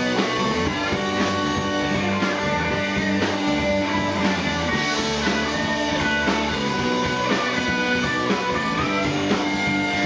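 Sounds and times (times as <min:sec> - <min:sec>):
bass guitar: 0:00.0 - 0:10.0
drums: 0:00.0 - 0:10.0
electric guitars: 0:00.0 - 0:10.0
sliding guitar notes: 0:00.0 - 0:10.0.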